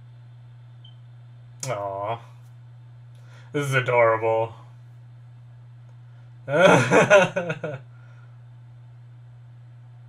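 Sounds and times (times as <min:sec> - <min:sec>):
man laughing: 0:06.5 - 0:07.9.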